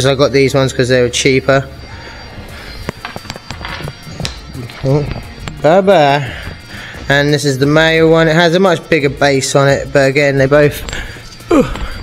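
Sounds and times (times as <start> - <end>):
faint background music: 0.0 - 12.0
metal fixings clinking: 2.8 - 12.0.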